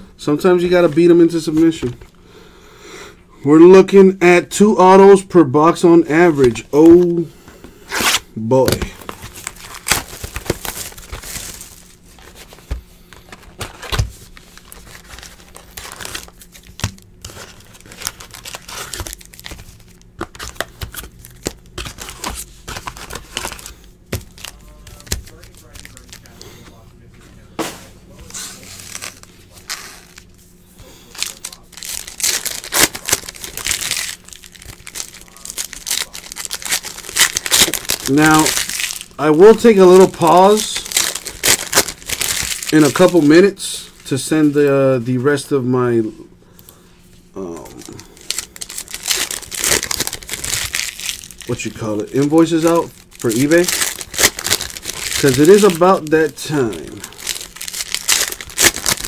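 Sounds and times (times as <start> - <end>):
plastic wrap crinkling and tearing: 7.9 - 26.8, 28.2 - 44.6, 47.4 - 59.0.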